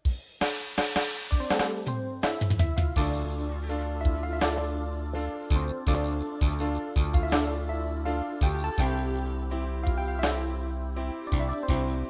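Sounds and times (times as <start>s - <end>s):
sustained keyboard notes: 1.4s - 12.0s
steady bass: 2.6s - 12.0s.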